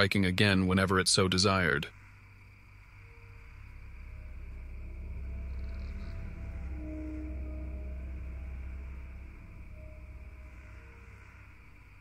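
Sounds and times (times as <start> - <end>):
dark ambient drone music: 0.0 - 12.0.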